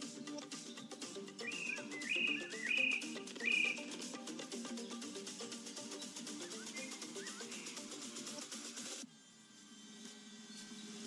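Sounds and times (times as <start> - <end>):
background music: 0.0 - 9.1
high whistled calls: 0.6 - 4.2, 5.8 - 8.4.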